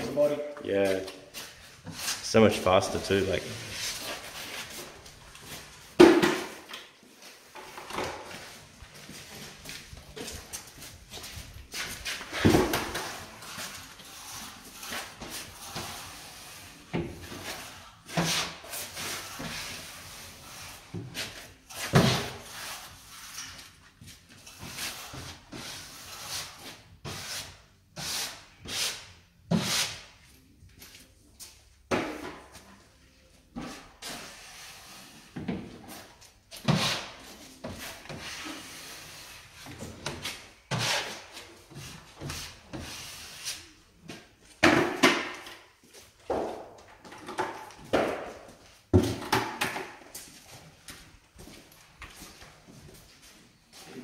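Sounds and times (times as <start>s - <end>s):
drywall tool scraping wall: 36.6s - 39.4s, 40.0s - 43.7s.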